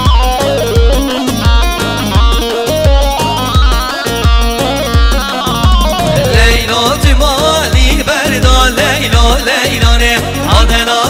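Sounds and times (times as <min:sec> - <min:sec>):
keyboard melody line: 0:00.0 - 0:11.0
steady bass-drum beat: 0:00.0 - 0:11.0.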